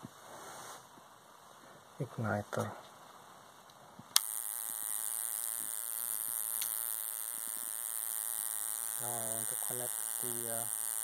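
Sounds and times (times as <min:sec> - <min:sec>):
spark igniter buzzing: 0:04.2 - 0:11.0.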